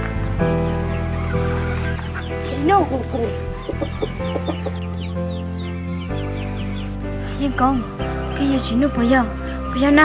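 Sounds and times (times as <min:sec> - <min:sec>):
background music with held notes: 0:00.0 - 0:10.0
high chirps: 0:00.8 - 0:08.6
chicken clucking: 0:01.2 - 0:05.1.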